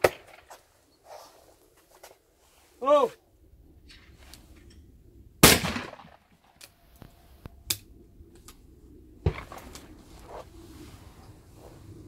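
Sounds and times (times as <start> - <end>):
shotgun shot: 5.4 - 6.2.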